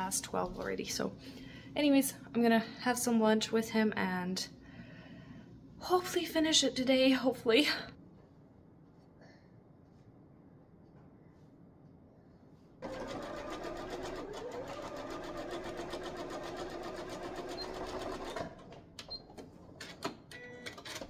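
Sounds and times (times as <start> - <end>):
sewing machine stitching: 12.8 - 18.9.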